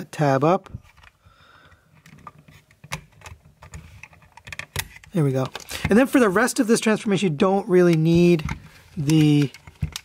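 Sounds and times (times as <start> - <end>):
plastic clicks and scrapes: 0.8 - 6.0, 7.8 - 10.0.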